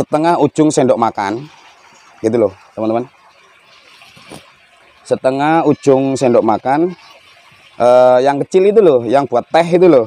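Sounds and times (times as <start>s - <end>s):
small water splash: 0.0s - 10.0s
water sloshing and trickling: 0.0s - 10.0s.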